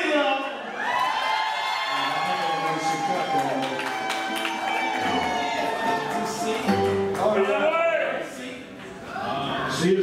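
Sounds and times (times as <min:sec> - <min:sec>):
live band playing: 0:04.0 - 0:07.8.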